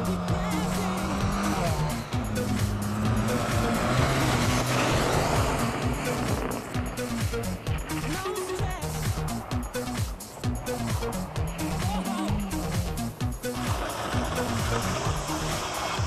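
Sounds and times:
rally car engine running hard: 0.0s - 8.2s, 9.2s - 16.0s
background music with beat: 0.0s - 16.0s
tyres on loose dirt: 0.0s - 16.0s.

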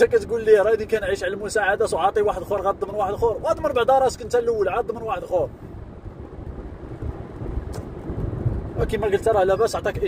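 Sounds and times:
car rumble inside cabin: 0.0s - 10.0s.

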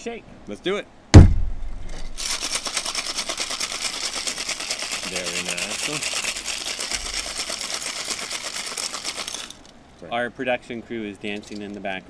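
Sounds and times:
ice rattling in cocktail shaker: 2.2s - 9.7s, 11.3s - 11.8s.

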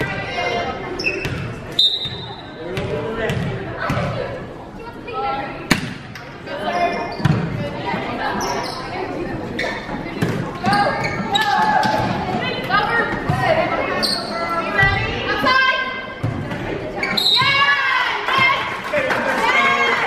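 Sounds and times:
volleyball hits: 5.7s - 6.2s.

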